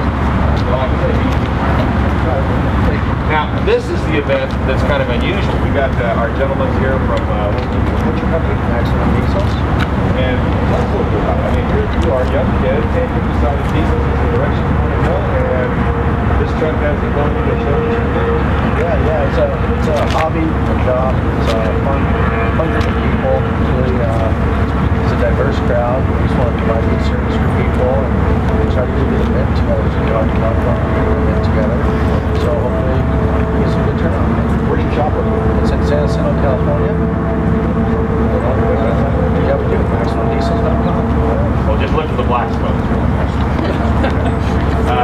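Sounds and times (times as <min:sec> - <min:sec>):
engine running loudly: 0:00.0 - 0:45.0
people's voices: 0:00.0 - 0:45.0.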